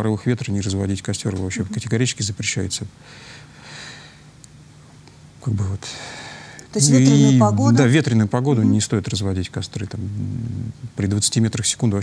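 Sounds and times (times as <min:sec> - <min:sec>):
low studio hum: 0:00.0 - 0:12.0.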